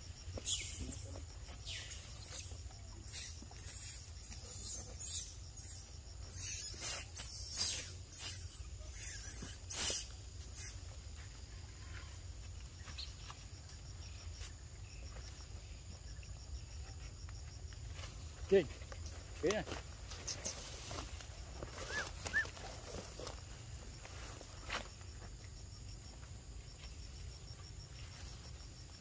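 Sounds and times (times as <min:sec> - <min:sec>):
insect drone: 0:00.0 - 0:29.0
macaque squealing: 0:03.1 - 0:10.8, 0:21.9 - 0:22.5.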